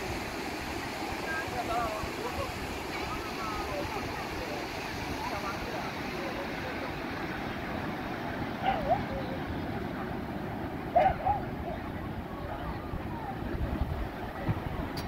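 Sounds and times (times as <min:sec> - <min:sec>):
distant crowd chatter: 0:00.0 - 0:15.0
surf and wind: 0:00.0 - 0:15.0.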